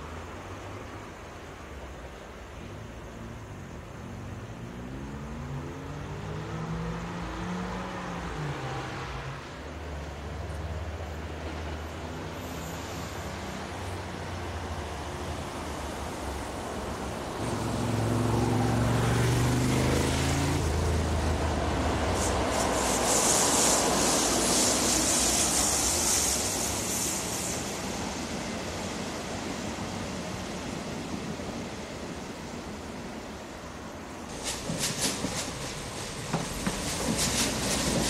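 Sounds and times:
electric locomotive passing: 0:00.0 - 0:38.0
train wheels hissing on rails: 0:05.9 - 0:38.0.

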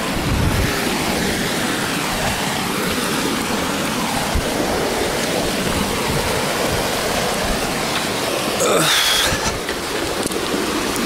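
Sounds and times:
seawater washing over sand: 0:00.0 - 0:11.0.

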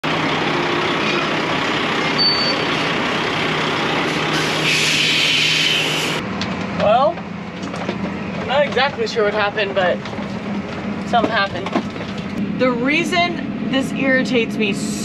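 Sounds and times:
diesel truck running: 0:00.0 - 0:15.0
short high squeal: 0:02.1 - 0:02.8, 0:04.3 - 0:06.2.

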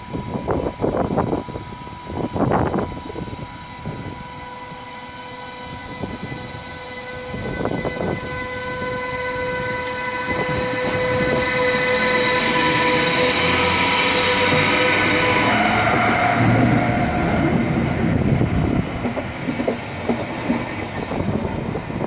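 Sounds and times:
electric locomotive whine: 0:00.0 - 0:22.0
train wheels rumbling on rail: 0:00.0 - 0:22.0.

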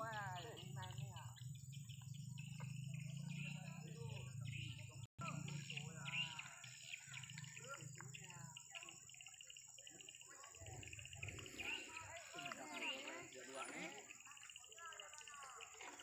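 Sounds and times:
bird chirps: 0:00.0 - 0:16.0
distant voices talking: 0:00.0 - 0:16.0.

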